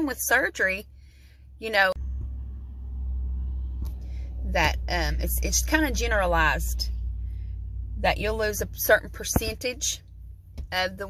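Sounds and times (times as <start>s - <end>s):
truck engine rumble: 0.0s - 11.0s.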